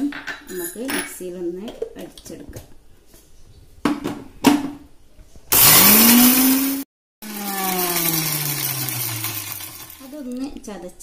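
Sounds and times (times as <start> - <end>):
mixer grinder motor whine: 5.5 - 10.2.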